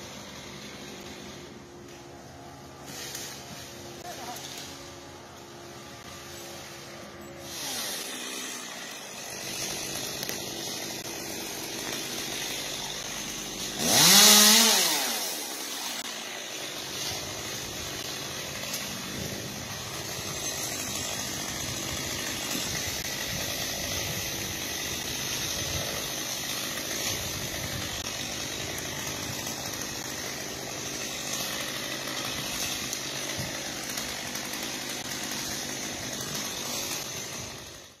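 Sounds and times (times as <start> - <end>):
chainsaw revving: 0.0 - 38.0.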